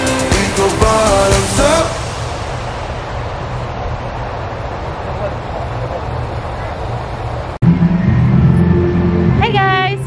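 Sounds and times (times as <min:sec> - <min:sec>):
low outdoor rumble: 0:00.4 - 0:10.0.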